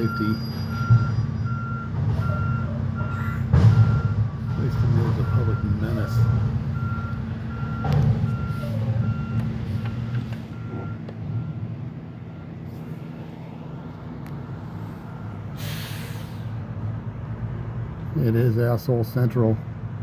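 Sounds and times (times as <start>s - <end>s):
backup alarm beeping: 0.0s - 12.6s
truck engine running: 0.0s - 20.0s
air hissing: 15.6s - 16.6s.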